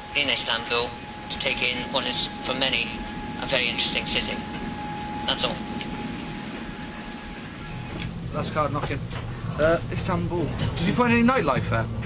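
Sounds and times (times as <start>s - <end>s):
low machinery hum: 0.0s - 12.0s
ship rumbling at sea: 0.0s - 12.0s.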